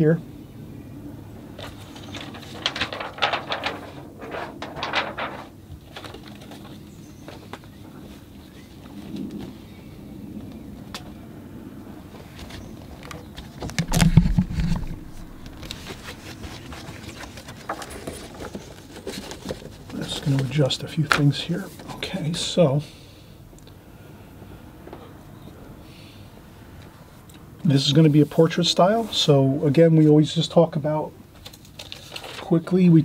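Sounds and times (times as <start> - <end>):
quick clicks and rustles: 1.6 - 7.8, 12.3 - 22.0, 31.3 - 32.6.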